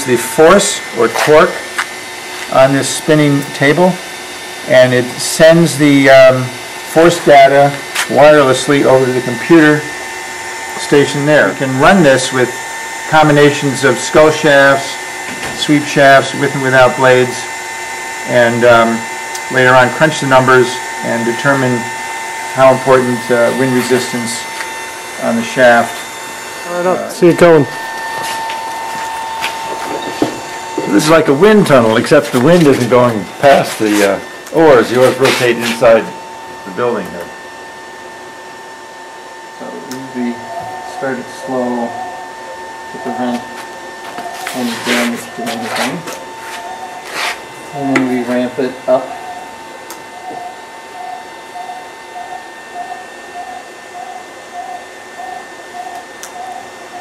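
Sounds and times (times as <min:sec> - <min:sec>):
electric motor whining and humming: 0:00.0 - 0:57.0.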